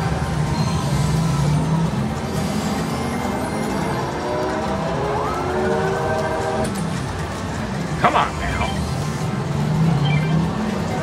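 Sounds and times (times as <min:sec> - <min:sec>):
slot machine reel-spin sounds: 0:00.0 - 0:11.0.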